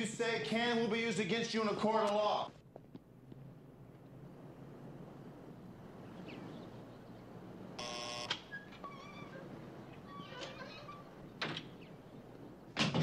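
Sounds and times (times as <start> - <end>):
low background hum: 0.0 - 13.0
intercom buzz: 7.8 - 8.5.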